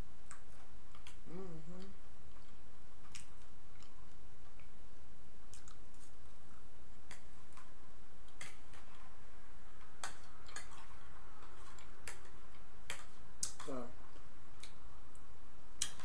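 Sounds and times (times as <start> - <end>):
chewing: 0.3 - 4.8, 5.4 - 9.1, 9.8 - 16.0.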